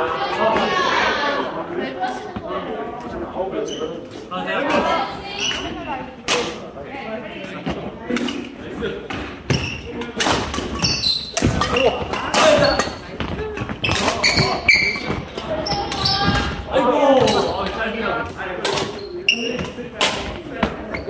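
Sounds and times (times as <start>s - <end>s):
rackets hitting shuttlecock: 9.1s - 16.6s
players calling out: 9.5s - 19.9s.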